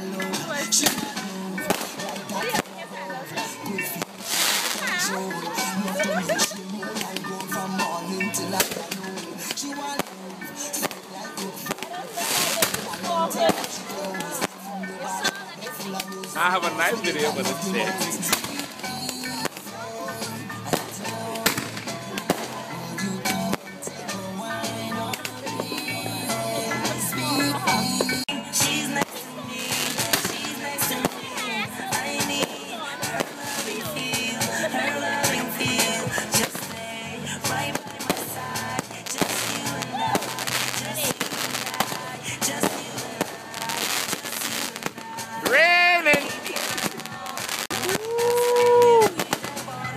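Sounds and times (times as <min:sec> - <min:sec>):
fireworks bangs and crackles: 0:00.0 - 0:49.9
music with steady beat: 0:00.0 - 0:49.9
voices: 0:00.0 - 0:49.9
fireworks shells banging: 0:20.6 - 0:22.6.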